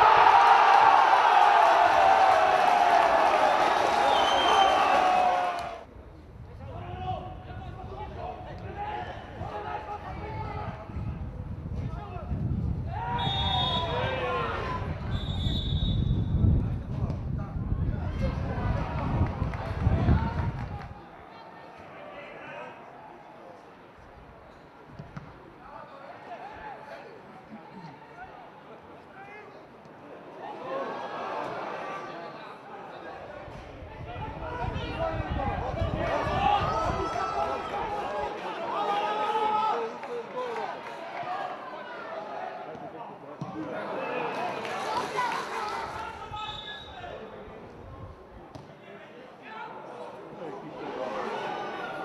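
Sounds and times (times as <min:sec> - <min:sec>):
footballers calling out: 0:12.9 - 0:16.0.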